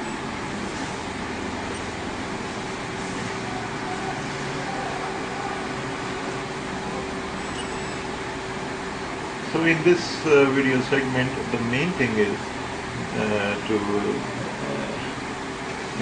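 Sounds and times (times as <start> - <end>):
machine hum: 0.0 - 16.0.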